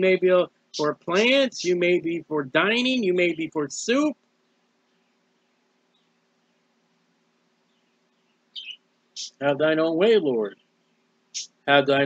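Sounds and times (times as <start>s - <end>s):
faint low hum: 0.0s - 4.2s, 8.6s - 10.6s, 11.4s - 12.0s
soft hiss: 0.0s - 12.0s
faint high chirps: 8.6s - 10.6s.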